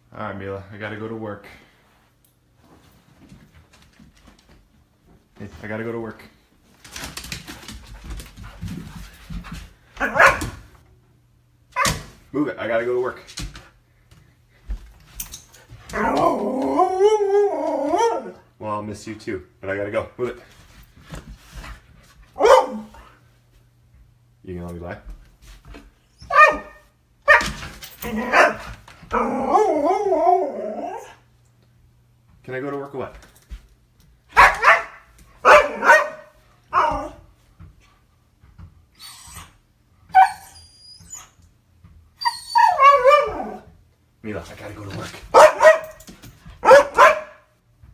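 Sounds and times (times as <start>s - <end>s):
husky howling vocalisation: 15.9s - 18.4s, 28.0s - 31.2s, 42.2s - 43.7s.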